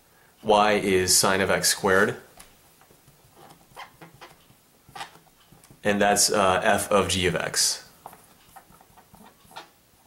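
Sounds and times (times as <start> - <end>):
marker writing on paper: 8.0 - 9.7.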